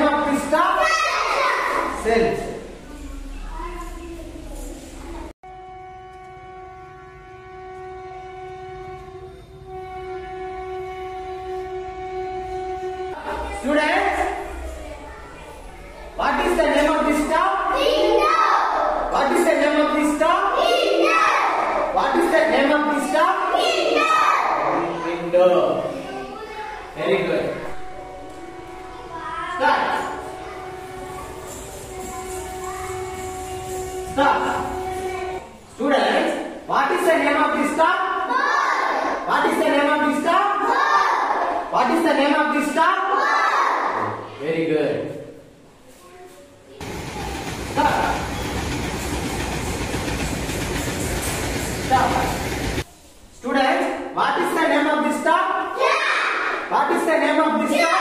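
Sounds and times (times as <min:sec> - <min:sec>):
train horn blast: 0:05.4 - 0:13.4, 0:27.5 - 0:29.2, 0:29.8 - 0:35.4
train running: 0:27.6 - 0:35.6, 0:46.8 - 0:52.9.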